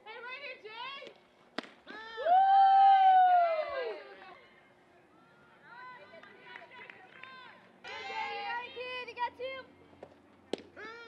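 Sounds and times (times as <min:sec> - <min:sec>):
voices calling and chattering: 0:03.7 - 0:11.0.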